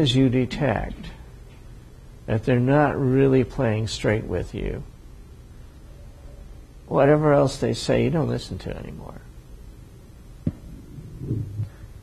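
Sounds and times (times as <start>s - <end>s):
man's low voice hum: 10.4s - 12.0s.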